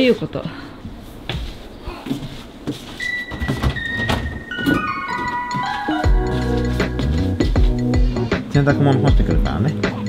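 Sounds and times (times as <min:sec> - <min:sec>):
footsteps on a floor: 0:00.8 - 0:08.2.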